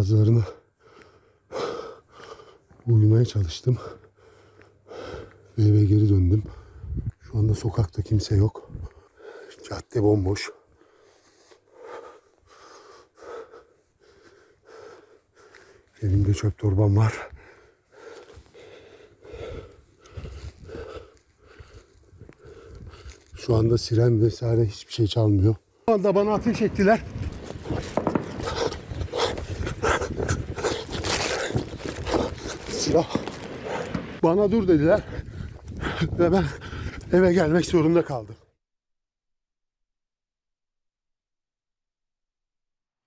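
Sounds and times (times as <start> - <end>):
person breathing close to microphone: 6.4 - 7.1, 10.7 - 16.0, 17.3 - 23.3, 27.9 - 34.2, 35.0 - 37.1.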